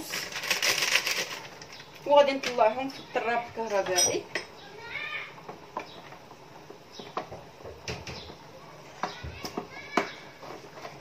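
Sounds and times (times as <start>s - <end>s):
foil sachet crinkling: 0.0s - 2.5s.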